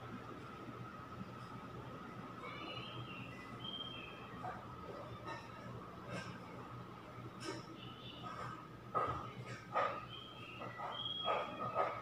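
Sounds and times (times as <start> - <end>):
faint steady hum: 0.0 - 12.0
dog barking: 9.0 - 10.0, 10.8 - 12.0.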